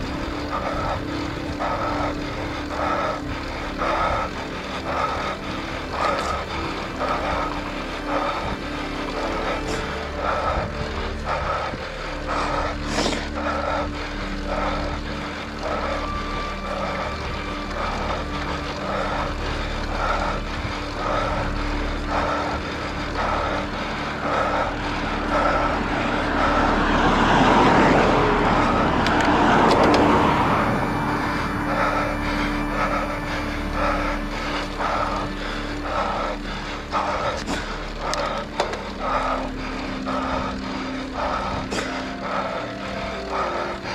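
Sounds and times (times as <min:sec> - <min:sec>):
car passing: 0:00.0 - 0:43.9
road and wind noise: 0:00.0 - 0:43.9
soft repeating pulse: 0:00.0 - 0:43.9.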